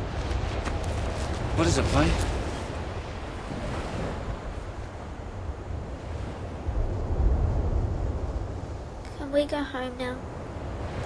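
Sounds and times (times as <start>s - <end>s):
waves breaking: 0.0s - 9.2s, 9.9s - 11.0s
wind: 0.0s - 11.0s.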